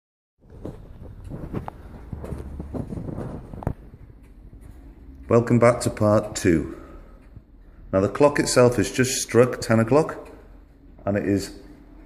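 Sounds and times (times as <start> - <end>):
low rumble: 0.5 - 5.2.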